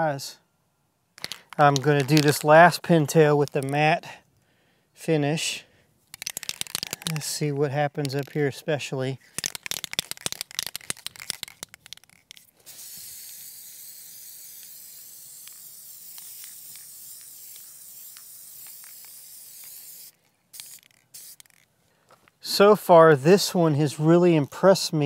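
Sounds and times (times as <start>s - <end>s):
aerosol can rattling: 1.2s - 2.6s, 3.4s - 3.8s, 6.1s - 8.6s, 9.2s - 21.7s
short spray puffs: 6.1s - 8.4s, 9.2s - 21.6s
spray hissing: 12.6s - 21.6s.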